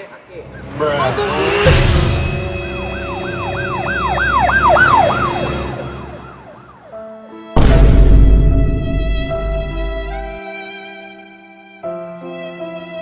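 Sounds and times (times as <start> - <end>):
loud car crash: 0.4 - 6.9
ambulance siren wailing: 0.4 - 7.0.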